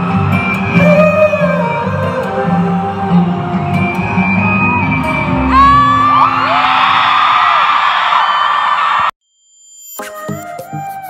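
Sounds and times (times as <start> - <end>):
live pop concert music: 0.0 - 9.1
crowd screaming and cheering: 0.0 - 9.2.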